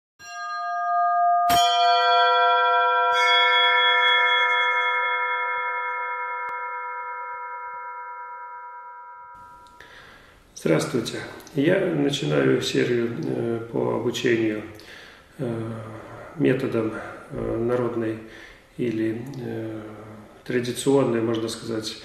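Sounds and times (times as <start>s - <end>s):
bell-like chime tones: 0.2s - 9.9s.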